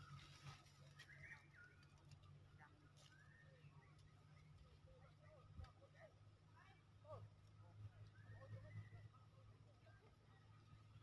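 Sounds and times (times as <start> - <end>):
faint bird chirps: 0.8 - 2.1, 2.9 - 4.8, 8.0 - 9.3.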